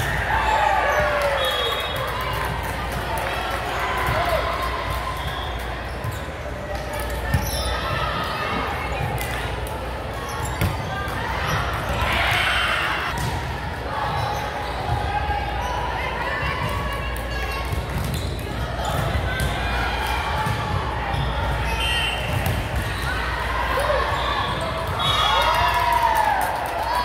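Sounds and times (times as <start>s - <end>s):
players shouting and chatting: 0.0s - 27.0s
volleyballs struck and bouncing: 8.5s - 13.8s.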